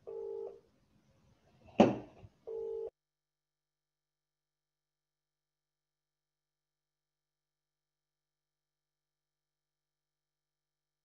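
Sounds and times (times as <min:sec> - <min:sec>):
electronic telephone beeps: 0:00.0 - 0:00.6, 0:02.5 - 0:02.9.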